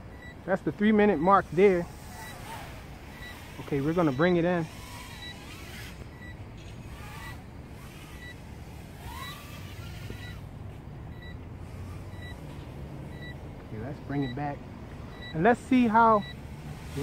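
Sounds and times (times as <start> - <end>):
drone motors whining: 0.0 - 17.0
short faint beeps: 0.0 - 17.0
steady low hum: 0.0 - 17.0.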